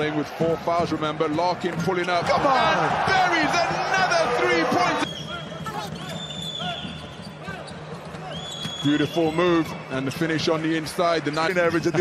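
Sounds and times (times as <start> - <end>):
arena crowd noise: 0.0 - 12.0
sneaker squeaks: 5.0 - 9.7.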